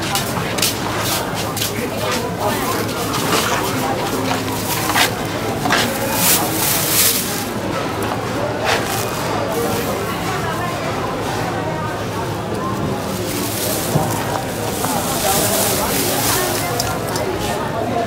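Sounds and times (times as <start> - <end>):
market chatter: 0.0 - 18.0
grain poured into plastic bag: 2.7 - 7.6, 12.8 - 17.6.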